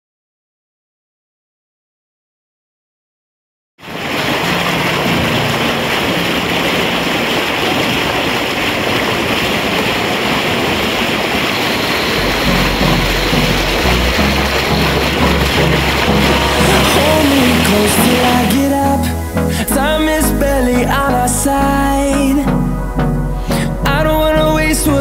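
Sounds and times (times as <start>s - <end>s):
water rushing over boulders: 3.8s - 22.4s
music with bass line: 12.2s - 25.0s.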